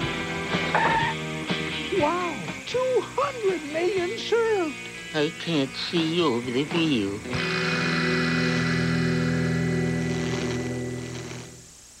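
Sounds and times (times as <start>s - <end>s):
faint tape hiss: 0.0s - 12.0s.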